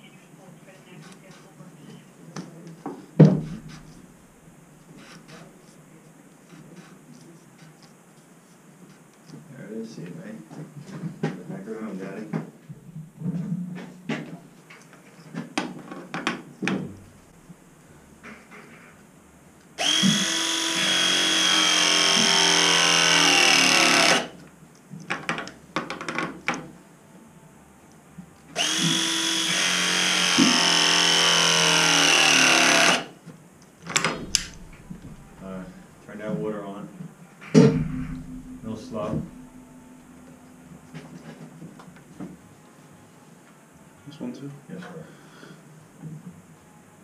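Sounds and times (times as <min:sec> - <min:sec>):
press tool motor whine: 0:19.8 - 0:24.3, 0:28.6 - 0:33.1.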